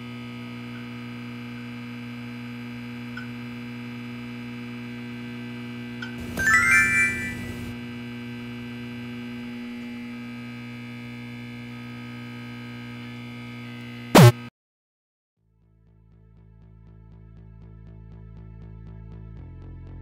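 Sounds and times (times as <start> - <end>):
rising chime sound effect: 6.2 - 7.8.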